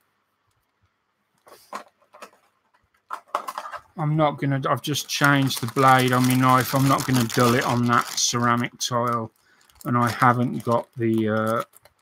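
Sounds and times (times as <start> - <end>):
plastic bag crinkling: 1.5 - 4.0, 4.8 - 12.0.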